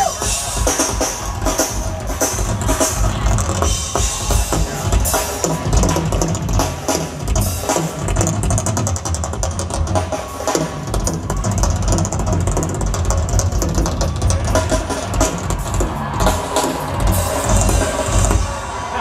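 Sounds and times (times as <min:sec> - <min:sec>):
drum kit solo: 0:00.0 - 0:18.9.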